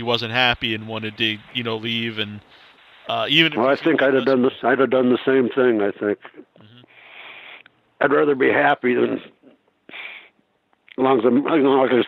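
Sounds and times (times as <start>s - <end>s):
man speaking: 0.0s - 7.0s
breath drawn in: 2.4s - 3.1s, 6.7s - 7.7s, 9.9s - 10.4s.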